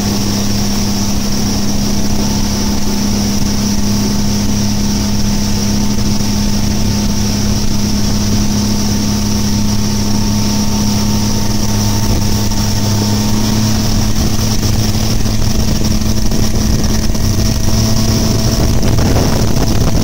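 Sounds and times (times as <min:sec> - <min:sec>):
outboard motor running: 0:00.0 - 0:20.0.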